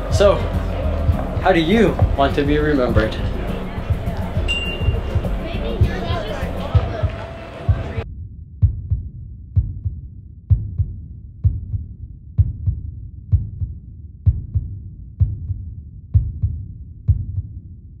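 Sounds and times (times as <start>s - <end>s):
heartbeat thumps: 0.0s - 8.0s, 8.6s - 17.6s.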